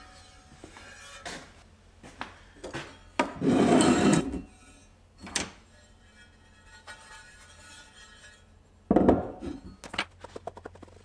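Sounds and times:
metal flask scraping on wood: 0:03.4 - 0:04.9
metal flask knocking on workbench: 0:08.9 - 0:09.4.

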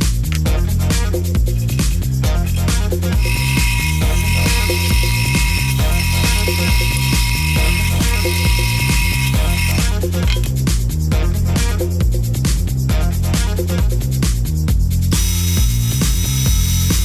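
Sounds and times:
electronic music with steady beat: 0:00.0 - 0:17.0
drill press boring into wood: 0:03.2 - 0:10.5, 0:15.2 - 0:17.0.

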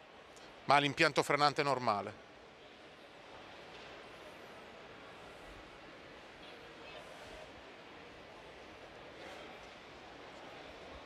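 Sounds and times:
exhibition hall background noise: 0:00.0 - 0:11.0.

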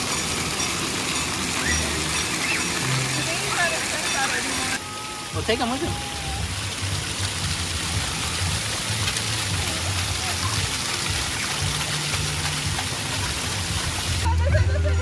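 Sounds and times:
water jet spraying and splashing: 0:00.0 - 0:14.4.

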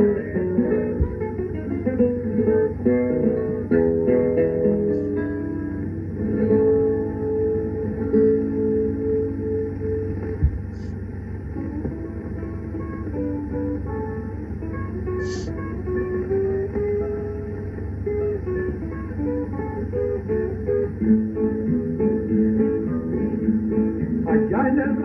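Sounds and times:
guitar melody: 0:00.0 - 0:25.0
steady low hum: 0:00.0 - 0:25.0
short thump: 0:01.0 - 0:01.4, 0:10.2 - 0:11.0.

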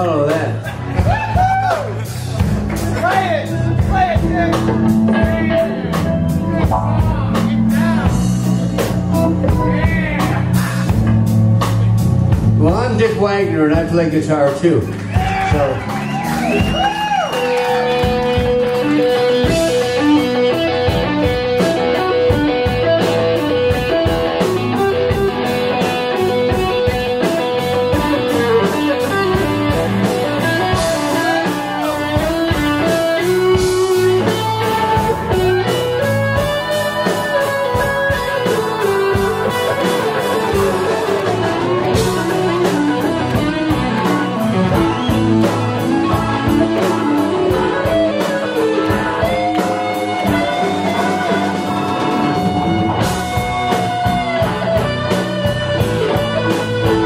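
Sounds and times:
live blues band: 0:00.0 - 0:57.0
electric guitar solo: 0:00.7 - 0:11.0, 0:14.8 - 0:57.0.

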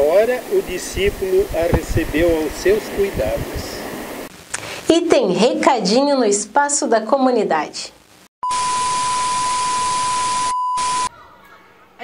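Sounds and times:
static hiss: 0:00.0 - 0:11.0
steady high beep: 0:08.4 - 0:11.1.

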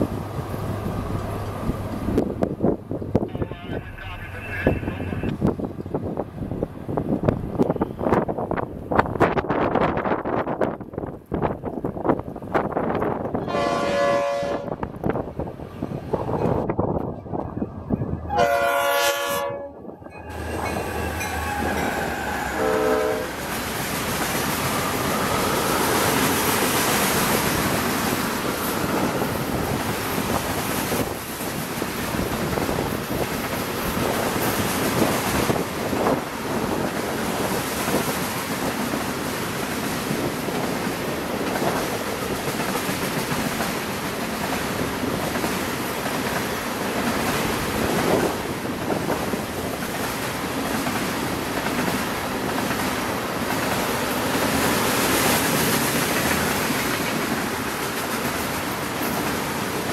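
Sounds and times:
diesel locomotives passing: 0:00.0 - 0:59.9
train horn blasts: 0:13.4 - 0:14.8, 0:18.3 - 0:23.4
train wheels clattering over rail joints: 0:25.4 - 0:59.9.

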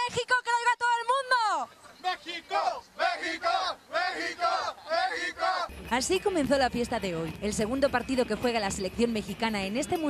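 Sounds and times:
football fans chanting: 0:02.0 - 0:05.7.

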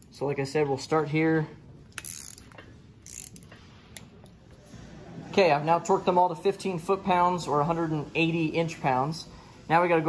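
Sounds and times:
torque wrench clicks: 0:01.9 - 0:04.1.

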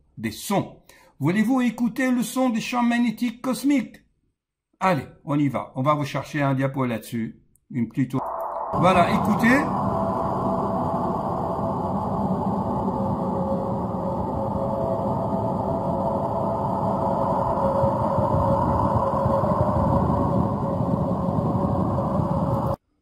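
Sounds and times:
faint held tone: 0:08.2 - 0:22.8
loud droning rumble: 0:08.4 - 0:22.8.

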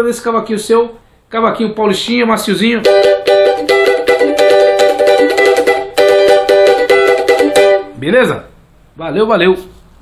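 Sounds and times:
cavaquinho strummed: 0:02.6 - 0:08.0.

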